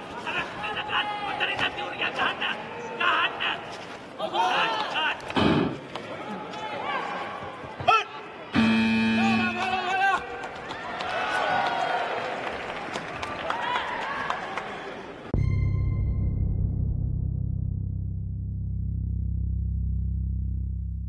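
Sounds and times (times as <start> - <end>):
voices in a hall: 0.0 - 15.3
loud electronic buzzer: 8.6 - 9.9.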